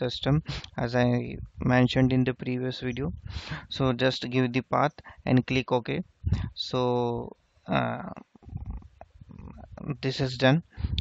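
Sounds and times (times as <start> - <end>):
man talking: 0.0 - 11.0
man breathing: 3.2 - 3.7
man's hesitation sounds: 6.2 - 11.0.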